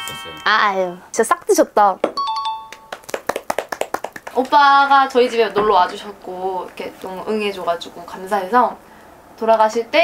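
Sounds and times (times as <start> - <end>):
bright multi-note chime: 2.2 - 3.0
rapid hand claps: 2.7 - 4.6.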